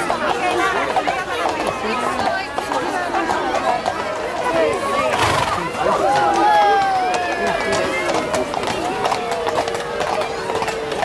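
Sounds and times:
crowd chatter: 0.0 - 11.0
horse hooves clicking on path: 0.0 - 11.0
crowd calling out: 4.4 - 11.0.

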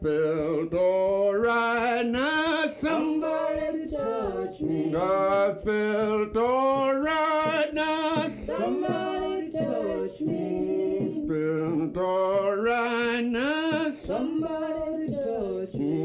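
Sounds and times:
men singing with vibrato: 0.0 - 16.0.

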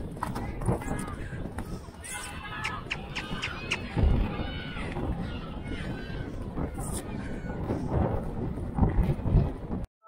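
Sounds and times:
hooves galloping on turf: 0.0 - 9.8
wind rumble on camera: 0.0 - 9.9.

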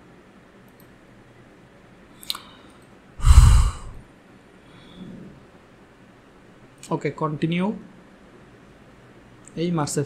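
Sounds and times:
air rushing on microphone: 3.2 - 4.0
man sighing: 3.2 - 4.0.

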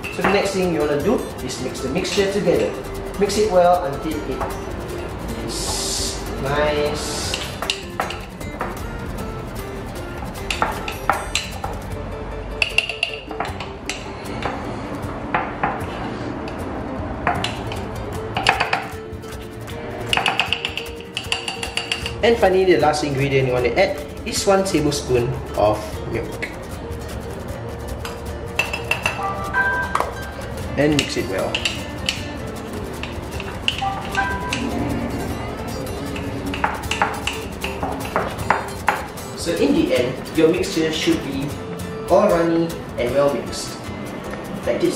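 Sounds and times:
background music: 0.0 - 44.9
metal spoon clinking in ceramic mug: 20.1 - 22.2.

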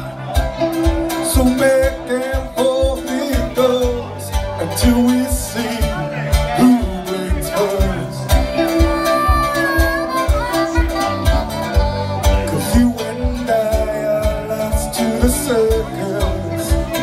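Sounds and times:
bass guitar: 0.0 - 17.0
blues harmonica bending notes: 0.0 - 17.0
drum kit kick beat: 0.0 - 17.0
electric guitar: 0.0 - 17.0.

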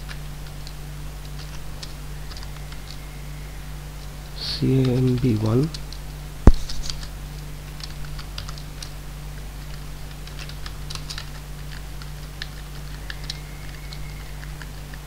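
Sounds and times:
low electrical hum: 0.0 - 15.0
keyboard typing: 4.5 - 7.1, 7.7 - 8.9, 9.6 - 15.0.

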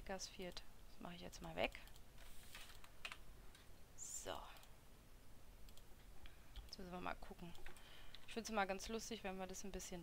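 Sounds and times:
keyboard and mouse clicks: 1.7 - 3.7, 5.6 - 6.8.

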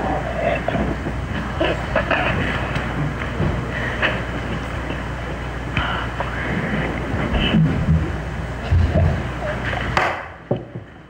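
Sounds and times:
faint murmuring voices: 0.0 - 7.6.

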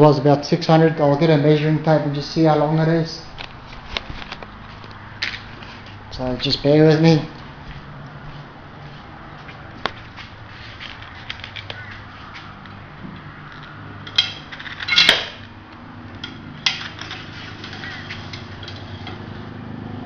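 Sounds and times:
metallic rattling clatter: 14.0 - 15.5, 16.2 - 19.6.

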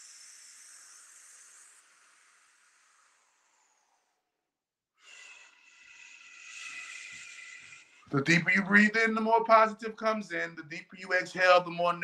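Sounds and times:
man breathing through pursed lips: 0.0 - 8.2.

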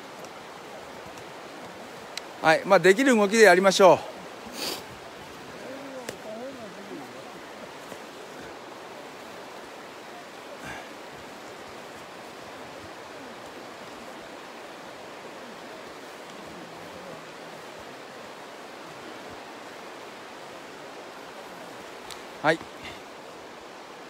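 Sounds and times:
river rushing: 0.0 - 24.0.

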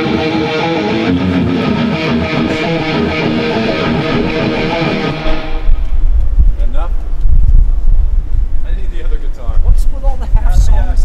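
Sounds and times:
heavy metal guitar riff: 0.0 - 6.0
low rumble: 2.1 - 11.0.

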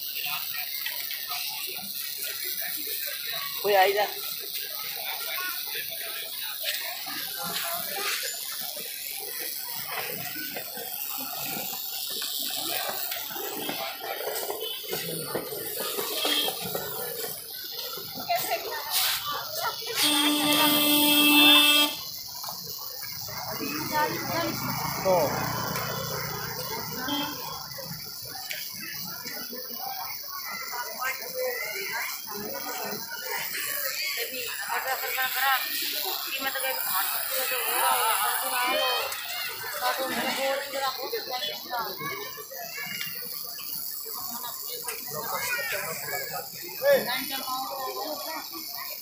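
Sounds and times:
people talking: 0.0 - 49.0
vehicle horn long note: 20.0 - 22.0.

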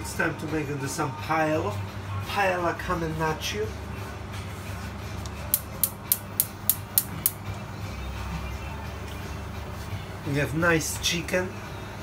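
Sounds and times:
gas hob igniter clicking: 5.5 - 7.5.

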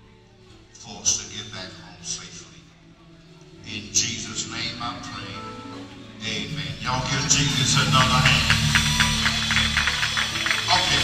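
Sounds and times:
bass and keyboard tones: 3.6 - 11.0
steady percussive beat: 6.8 - 11.0.

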